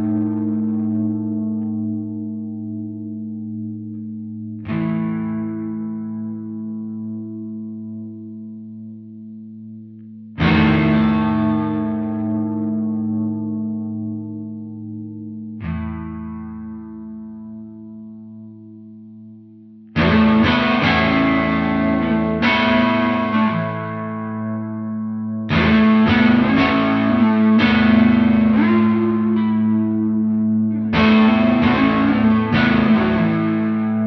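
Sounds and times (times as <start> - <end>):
electric guitar melody over drone: 0.0 - 34.0.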